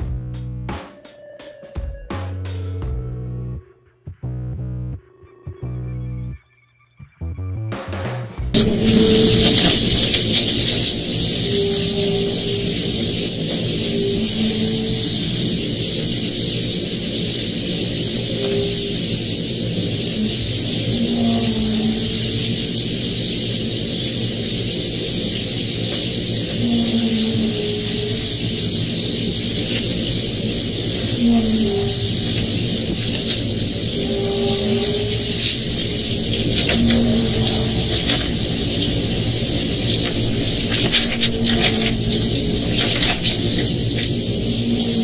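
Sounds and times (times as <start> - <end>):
loud steady hissing noise: 8.5 - 45.0
low wavering tones: 8.5 - 45.0.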